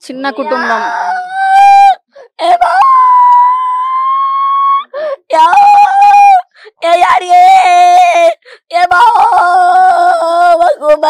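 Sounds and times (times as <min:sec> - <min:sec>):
woman wailing in distress: 0:00.4 - 0:06.5.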